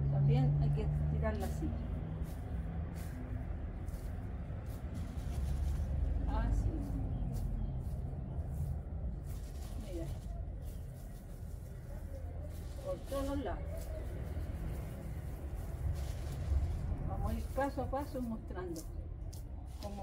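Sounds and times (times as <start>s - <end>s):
low background rumble: 0.0s - 20.0s
seed pattering on soil: 1.8s - 20.0s.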